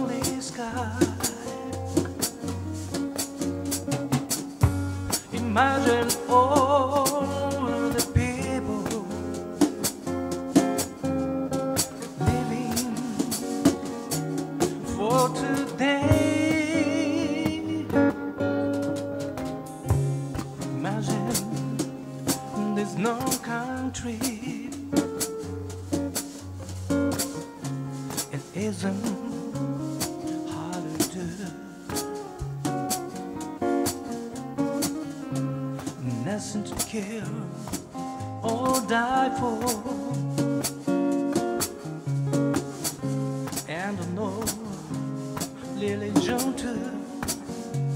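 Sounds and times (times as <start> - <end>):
person singing: 0.0 - 2.6, 5.1 - 10.0, 10.6 - 25.3, 28.1 - 32.0, 34.9 - 41.9, 43.5 - 47.9
acoustic guitars strummed: 0.0 - 47.9
drum kit beat: 0.0 - 47.9.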